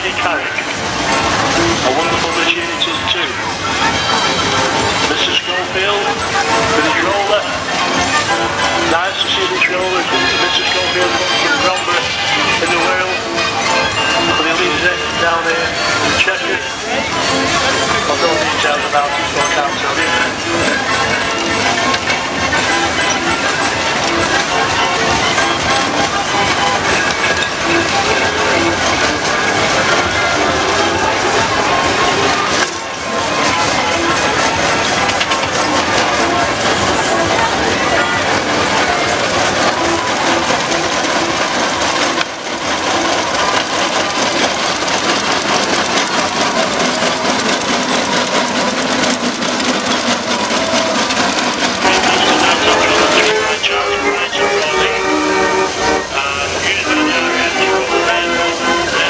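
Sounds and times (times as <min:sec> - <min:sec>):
music with vocals: 0:51.6 - 0:59.0.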